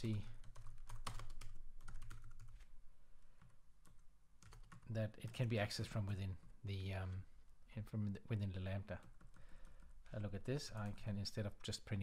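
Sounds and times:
computer keyboard typing: 0.0 - 2.6, 3.4 - 5.5, 6.4 - 6.6, 9.0 - 11.8.

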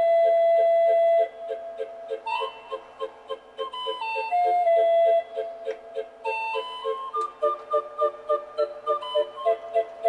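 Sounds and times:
calliope music: 0.0 - 10.0.

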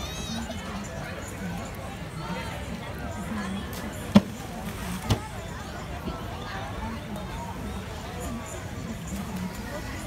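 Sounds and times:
background voices and chatter: 0.0 - 10.0.

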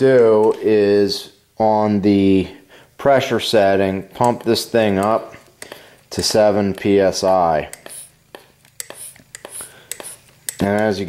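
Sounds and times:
air hissing: 7.6 - 10.6
hand pump clicking: 8.8 - 10.9.

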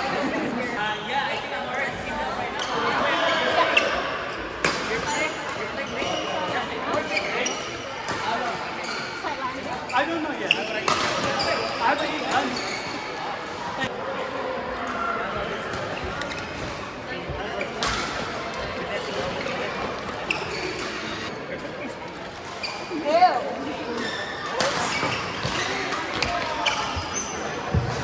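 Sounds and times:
voices in a large hall: 0.0 - 28.0
shoes squeaking on court: 5.1 - 13.2, 18.9 - 21.4, 22.4 - 28.0.

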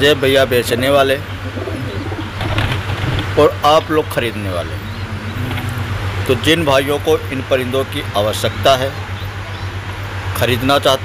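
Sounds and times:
pigeons cooing: 0.7 - 6.8
low hum: 1.2 - 10.1.

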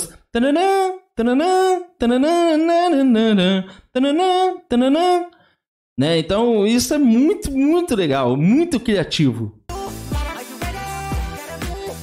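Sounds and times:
man singing wordless phrases: 0.0 - 12.0.

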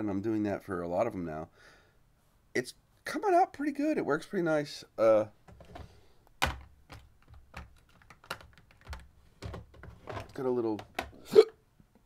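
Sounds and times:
clicks and taps on plastic drawers: 5.5 - 11.2.

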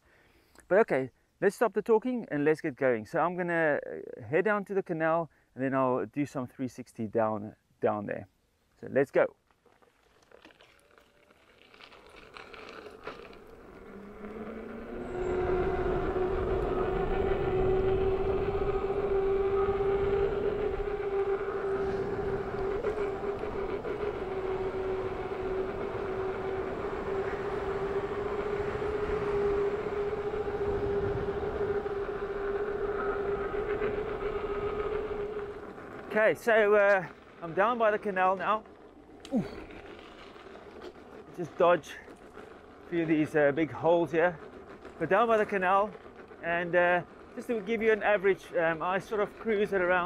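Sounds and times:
road noise: 9.6 - 50.0
electric motor whine: 11.0 - 41.3
wind noise: 12.0 - 38.0.

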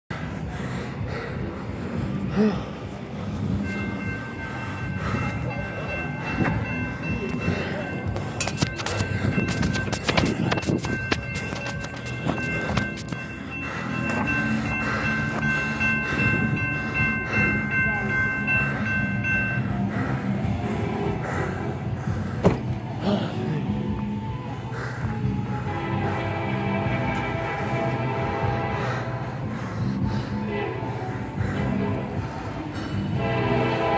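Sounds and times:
train rumble: 0.1 - 33.9
crossing bell ringing tone: 2.9 - 21.3, 25.6 - 29.3, 30.1 - 33.9.

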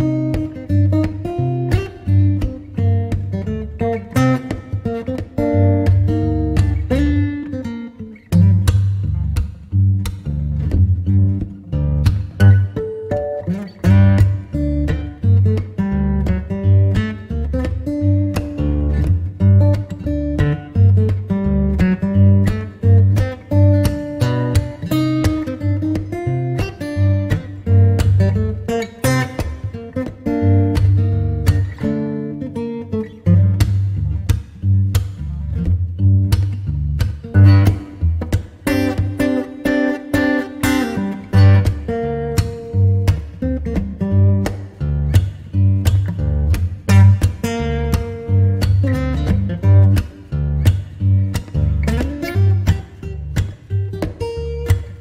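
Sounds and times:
acoustic guitar chords: 0.0 - 55.0.

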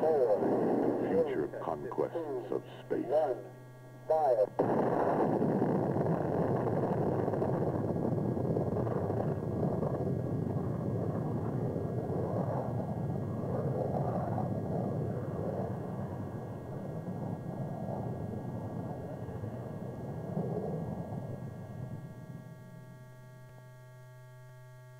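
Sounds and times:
rocket engine rumble: 0.0 - 23.2.

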